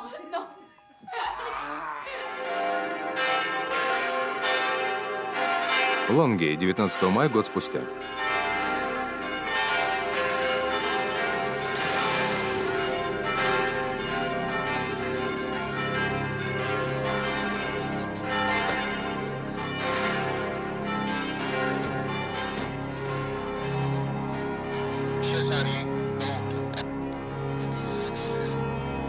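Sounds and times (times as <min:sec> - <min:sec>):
church bells pealing: 0:00.0 - 0:29.0.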